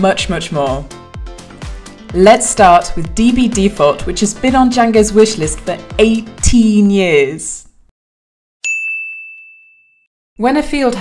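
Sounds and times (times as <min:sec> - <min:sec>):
bell-like ding: 0:08.6 - 0:10.1.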